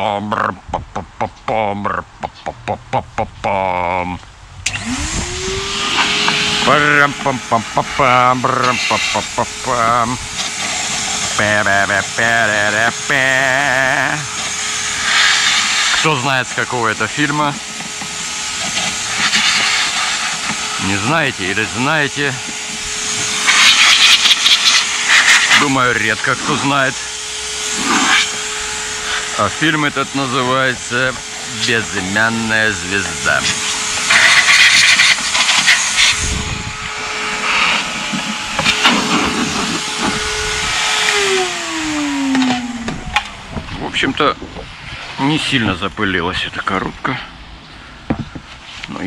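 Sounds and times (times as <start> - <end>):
faint motor hum: 0.0 - 48.7
air hissing from vacuum hose: 4.6 - 43.6.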